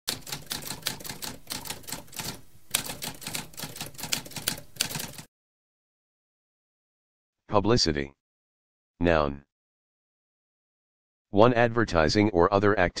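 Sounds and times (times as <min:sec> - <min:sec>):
typewriter typing: 0:00.1 - 0:05.3.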